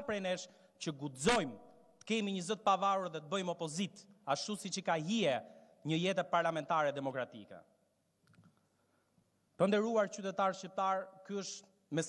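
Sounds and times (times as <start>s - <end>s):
man speaking into microphone: 0.0s - 7.7s, 9.6s - 12.0s.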